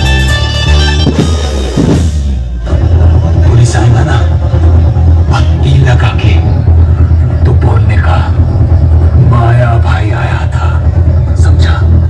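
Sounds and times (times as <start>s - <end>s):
heavy bass rumble: 0.0s - 12.0s
dialogue through sound system: 2.4s - 12.0s.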